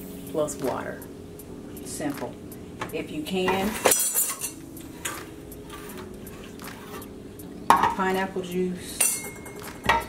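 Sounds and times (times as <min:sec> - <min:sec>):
metal can knocking on stone countertop: 0:07.7 - 0:08.0.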